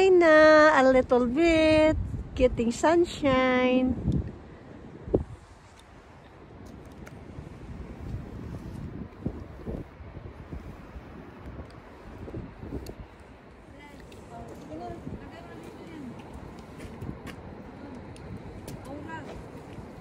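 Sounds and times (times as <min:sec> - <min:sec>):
faint outdoor ambience: 0:00.0 - 0:20.0
wind noise on microphone: 0:00.0 - 0:20.0.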